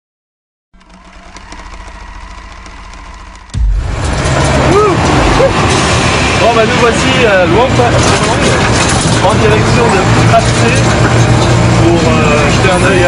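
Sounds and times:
steady hum: 0:00.8 - 0:06.7
tuk-tuk engine and road noise: 0:00.8 - 0:13.0.

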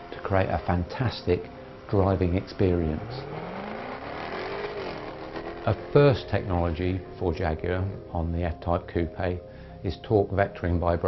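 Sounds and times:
car engine accelerating hard: 0:00.0 - 0:07.2.

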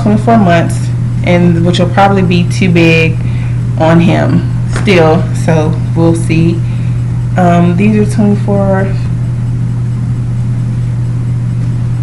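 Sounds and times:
steady low-pitched hum: 0:00.0 - 0:12.0.

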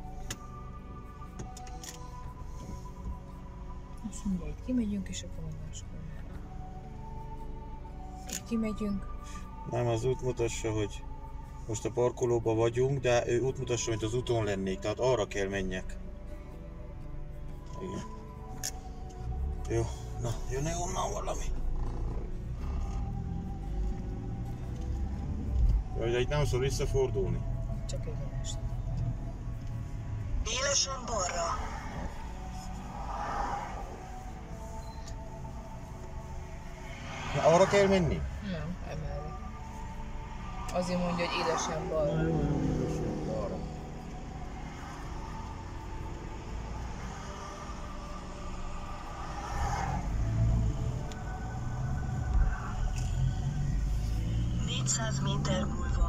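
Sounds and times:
car engine and tyres rumbling: 0:00.0 - 0:56.0
faint music: 0:00.0 - 0:56.0.

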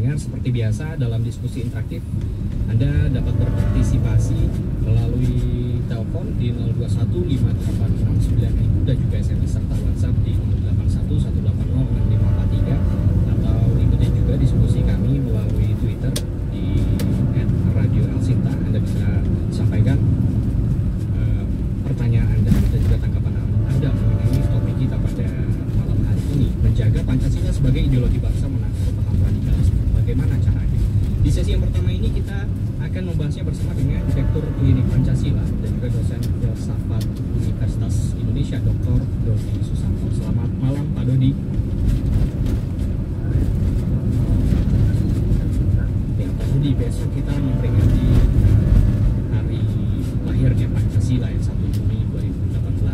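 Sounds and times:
car road and engine rumble: 0:00.0 - 0:52.9.

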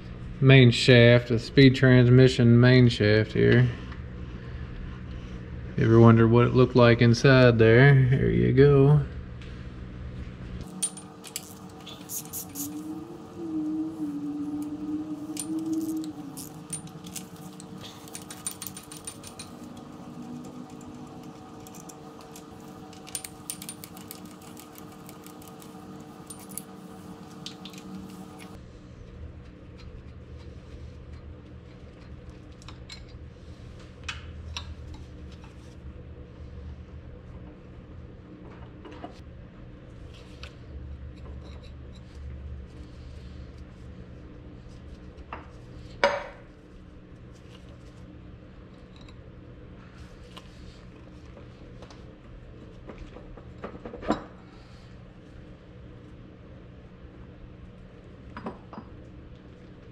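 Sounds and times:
steady hum: 0:00.0 - 0:59.9.

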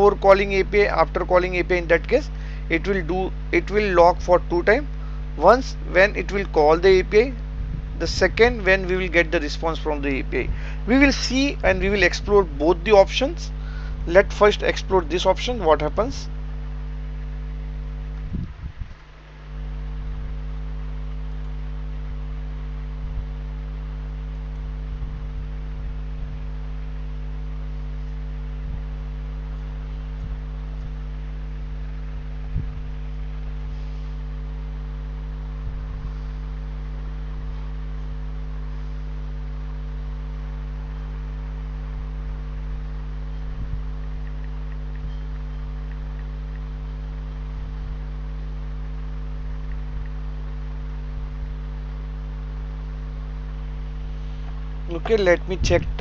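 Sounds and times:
steady electrical hum: 0:00.0 - 0:56.0
faint clicks: 0:44.2 - 0:46.7.

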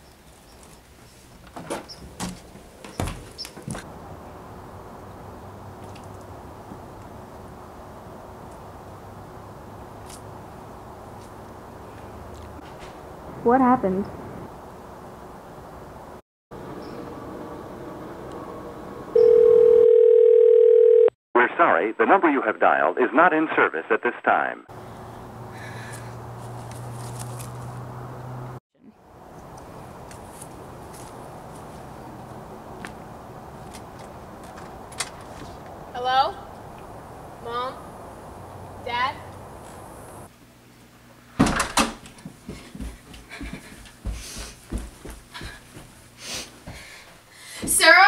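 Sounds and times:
footsteps on carpeted stairs: 0:00.6 - 0:03.9, 0:41.4 - 0:48.0
telephone ringback tone: 0:19.2 - 0:21.1
person panting heavily: 0:25.5 - 0:26.2, 0:42.5 - 0:47.7.

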